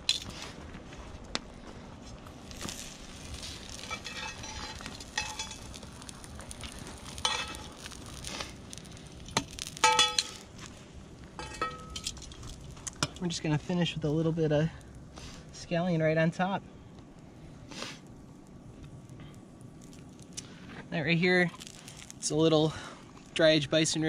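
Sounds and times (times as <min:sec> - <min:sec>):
metal tongs clinking on pan: 0:03.8 - 0:05.7, 0:07.2 - 0:07.8, 0:09.8 - 0:10.4, 0:11.4 - 0:12.4.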